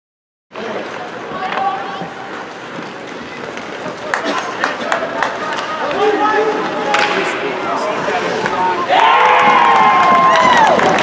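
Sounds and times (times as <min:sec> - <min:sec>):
arena background noise: 0:00.5 - 0:11.0
hockey sticks and puck clacking: 0:00.6 - 0:11.0
people shouting: 0:08.8 - 0:11.0.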